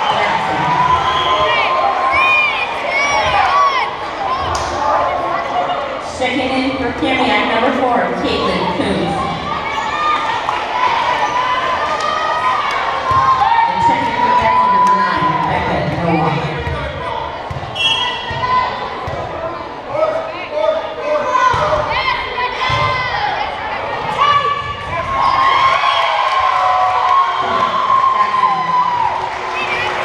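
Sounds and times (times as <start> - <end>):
crowd cheering: 0.0 - 6.0, 8.3 - 19.4, 21.2 - 30.0
people calling out and shouting: 12.3 - 25.6.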